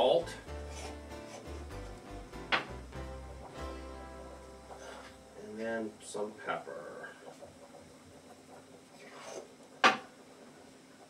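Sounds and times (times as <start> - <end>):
low steady hum: 0.0 - 9.6.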